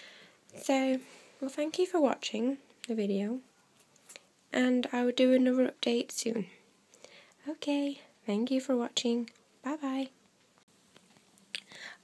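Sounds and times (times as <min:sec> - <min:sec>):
woman talking: 0:00.6 - 0:03.5, 0:07.4 - 0:10.2.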